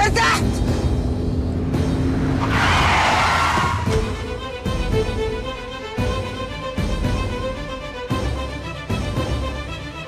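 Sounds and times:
car engine rumbling: 0.0s - 5.8s
dramatic music: 0.0s - 10.0s.

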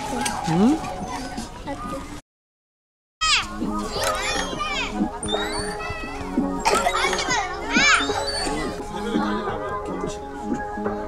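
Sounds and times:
children squealing and laughing: 3.2s - 9.4s
background music: 3.2s - 11.0s.

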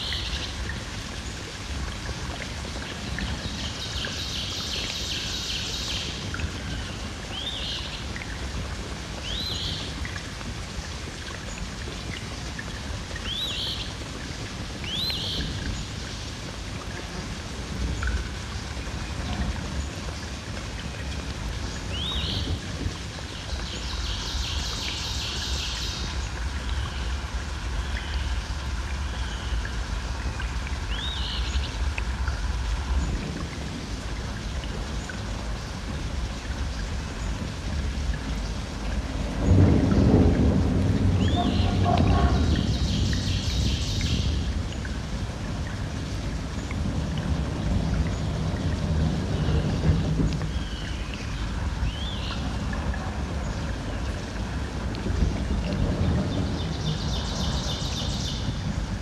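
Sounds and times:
steady low rumble: 26.0s - 59.0s.

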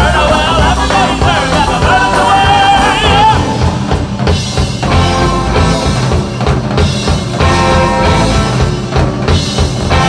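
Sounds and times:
bass balalaika: 0.0s - 10.0s
drum kit: 0.0s - 10.0s
electric guitar: 0.0s - 10.0s.

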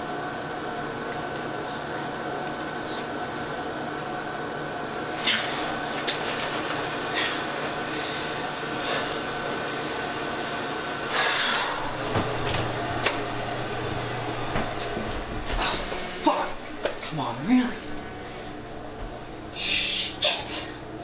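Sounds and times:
steady hum: 0.0s - 21.0s.

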